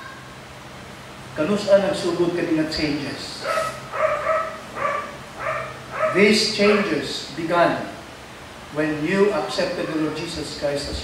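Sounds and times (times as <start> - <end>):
dog barking: 3.4 - 6.9.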